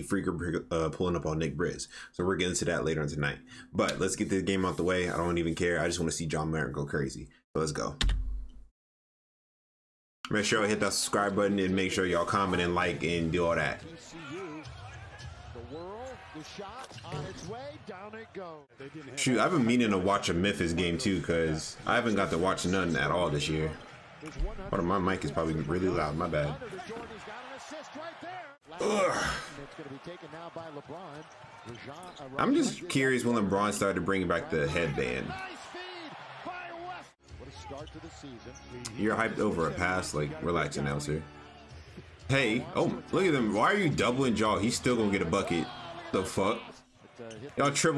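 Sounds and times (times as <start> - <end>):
arena crowd noise: 10.3 - 47.9
announcer commentary: 15.8 - 30.6, 31.9 - 41.3, 42.3 - 46.8
announcer talking: 42.3 - 46.7.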